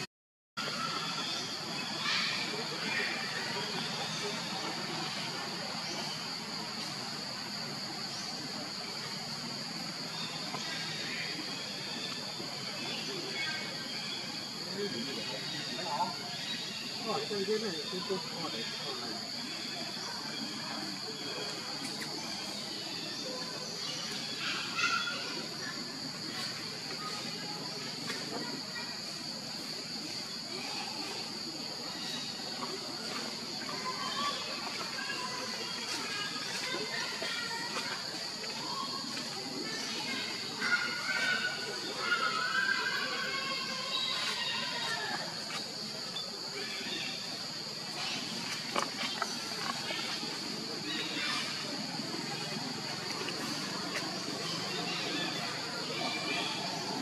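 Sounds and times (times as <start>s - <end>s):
outdoor background murmur: 0.0s - 57.0s
insects droning: 0.6s - 57.0s.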